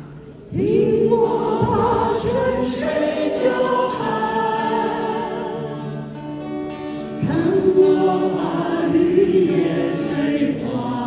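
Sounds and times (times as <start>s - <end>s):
vocal ensemble singing in harmony: 0.0s - 11.0s.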